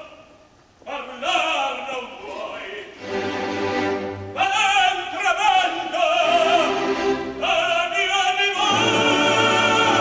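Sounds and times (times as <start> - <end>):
opera orchestra: 0.0 - 10.0.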